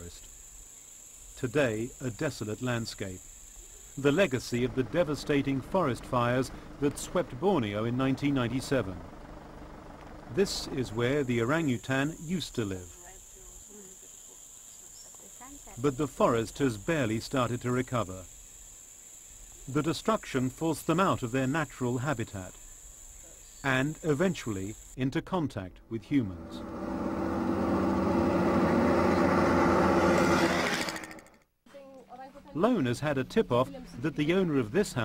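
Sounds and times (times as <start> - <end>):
engine running: 4.2 - 11.9, 26.0 - 31.4
high-pitched insect drone: 10.5 - 25.0.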